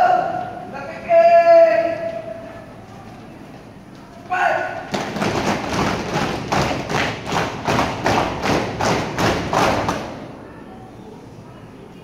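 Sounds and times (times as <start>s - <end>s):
marching footsteps on concrete: 4.8s - 10.1s.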